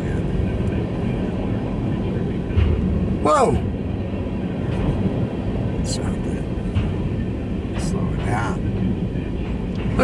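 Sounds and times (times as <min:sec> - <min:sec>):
freight train wheels rumbling: 0:00.0 - 0:10.0.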